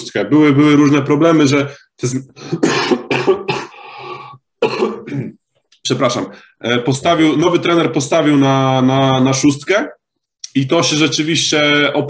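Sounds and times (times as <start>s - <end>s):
man coughing: 2.4s - 5.4s.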